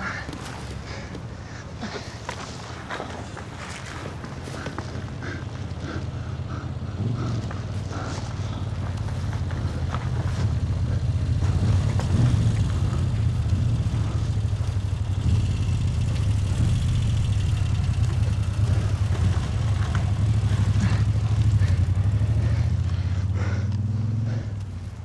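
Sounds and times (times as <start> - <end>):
motorcycle engine idling: 0.0 - 25.0.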